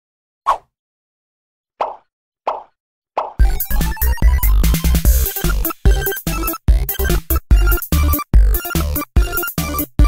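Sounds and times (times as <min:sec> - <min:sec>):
intro music with bass beat: 0:03.4 - 0:10.0.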